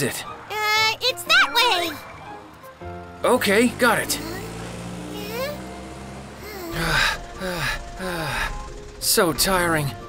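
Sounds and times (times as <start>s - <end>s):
cartoon truck engine running: 3.2s - 10.0s.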